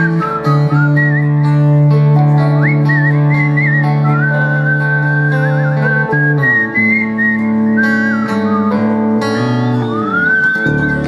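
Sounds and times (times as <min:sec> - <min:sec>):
acoustic guitars: 0:00.0 - 0:11.0
high whistled melody: 0:00.0 - 0:11.0
held low bass note: 0:09.2 - 0:11.0.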